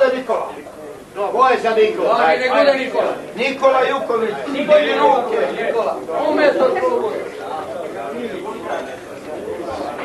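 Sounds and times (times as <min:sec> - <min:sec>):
murmur of overlapping voices: 0:00.0 - 0:10.0.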